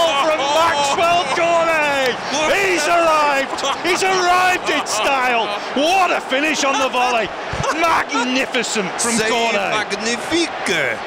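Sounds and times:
man calling out excitedly: 0:00.0 - 0:09.9.

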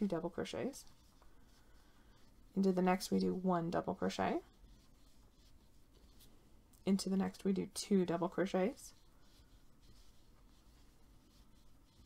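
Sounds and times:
woman speaking: 0:00.0 - 0:00.9, 0:02.6 - 0:04.5, 0:06.8 - 0:09.0
crochet hook scratching yarn: 0:00.0 - 0:06.3, 0:07.0 - 0:12.0.

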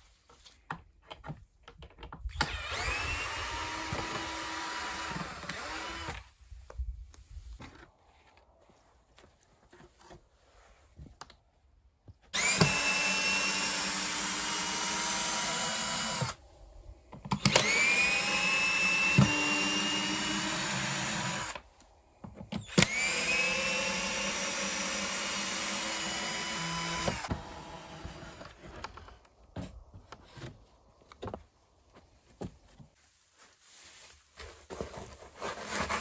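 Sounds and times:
cordless drill whining: 0:02.3 - 0:06.3, 0:12.3 - 0:16.4, 0:17.3 - 0:21.7, 0:22.6 - 0:29.3.

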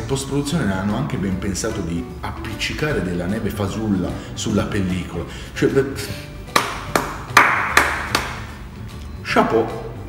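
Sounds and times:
slow hand claps: 0:06.5 - 0:09.0.

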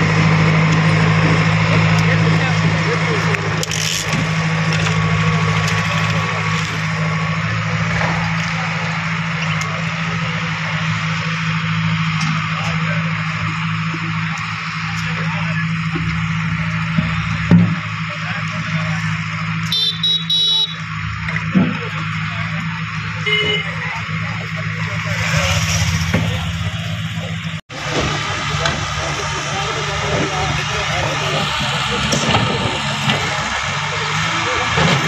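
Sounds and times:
street noise: 0:00.0 - 0:35.0
vehicle engine running: 0:00.0 - 0:35.0
horn toot: 0:19.6 - 0:20.9, 0:23.2 - 0:23.9
brief beep: 0:19.7 - 0:20.8.

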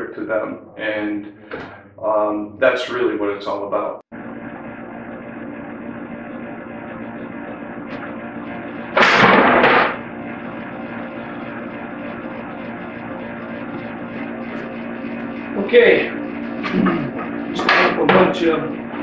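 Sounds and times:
steady hum: 0:00.0 - 0:19.0
loud clatter of boards: 0:09.0 - 0:10.0.

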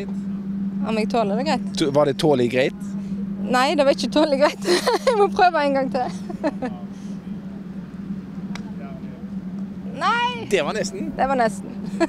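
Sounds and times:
steady low hum: 0:00.0 - 0:12.0
putter striking golf ball: 0:08.3 - 0:08.8.

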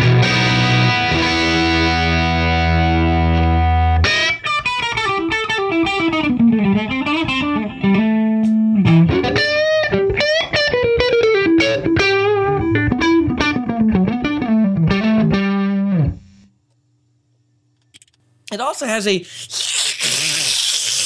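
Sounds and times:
overdriven electric guitar: 0:00.0 - 0:16.5.

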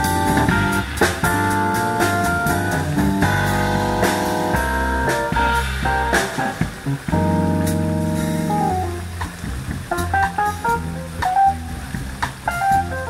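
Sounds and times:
quick single-note lead run: 0:00.0 - 0:09.3
bass line: 0:00.0 - 0:13.0
drums played with sticks: 0:00.0 - 0:13.0
jazz band playing: 0:00.0 - 0:13.0.

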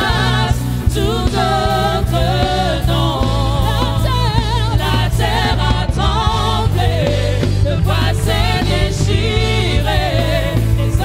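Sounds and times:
keyboard and bass accompaniment: 0:00.0 - 0:11.0
voices singing gospel with vibrato: 0:00.0 - 0:11.0.

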